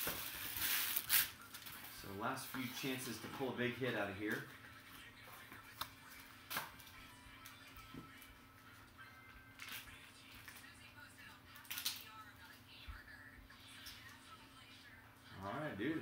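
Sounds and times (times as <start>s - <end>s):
packaging crinkles and clicks: 0.0s - 1.9s, 11.6s - 12.1s.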